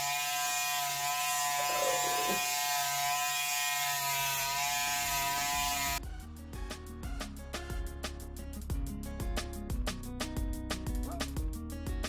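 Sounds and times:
electric hair clippers buzzing: 0:00.0 - 0:06.0.

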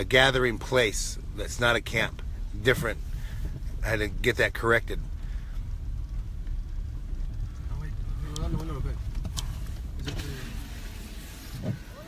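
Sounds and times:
motor vehicle engine rumble: 0:00.0 - 0:12.0.

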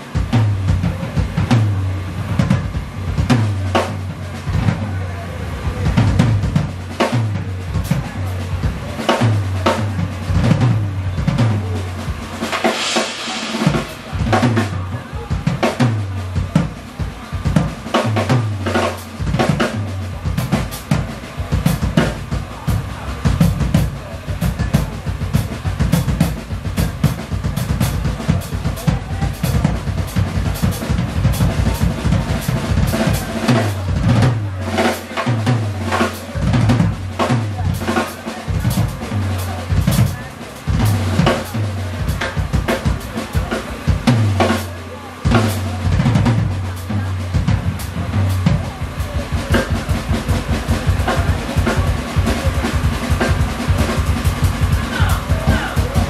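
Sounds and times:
busy drum kit: 0:00.0 - 0:56.0
live band playing: 0:00.0 - 0:56.0
low bass notes: 0:45.3 - 0:48.8.

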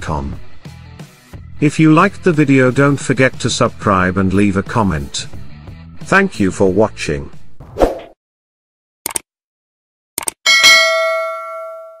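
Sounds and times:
notification bell ding: 0:10.5 - 0:12.0.

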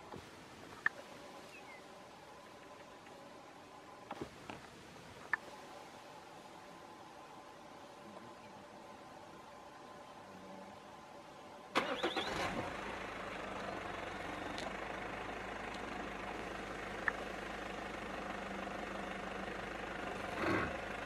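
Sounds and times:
vehicle engine cranking and starting: 0:11.7 - 0:21.0
vehicle engine idling: 0:11.7 - 0:21.0.

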